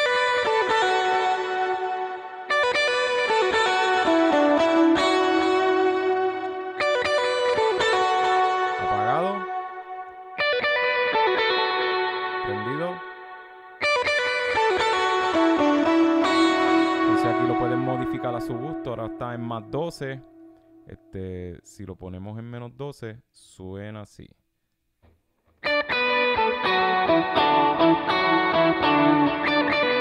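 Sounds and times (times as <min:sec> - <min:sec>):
electric guitar with octave effect: 0:00.0 - 0:21.2, 0:25.0 - 0:30.0.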